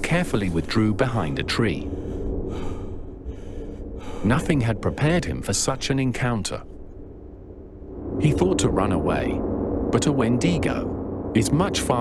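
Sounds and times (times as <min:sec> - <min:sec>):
soft breath sound: 0:00.0 - 0:06.9
low steady drone: 0:00.0 - 0:12.0.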